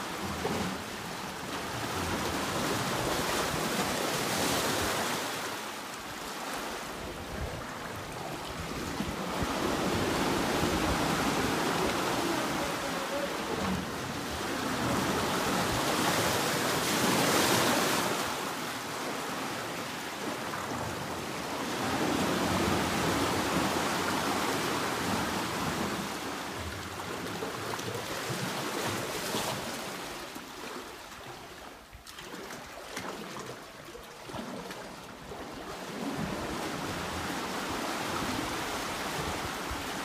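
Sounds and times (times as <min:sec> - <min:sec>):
water sloshing against rock walls: 0:22.0 - 0:40.0.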